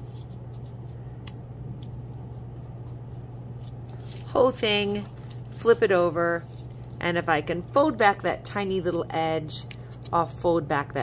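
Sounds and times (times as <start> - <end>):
steady low hum: 0.0 - 11.0
paper crinkling and tapping: 3.6 - 8.4.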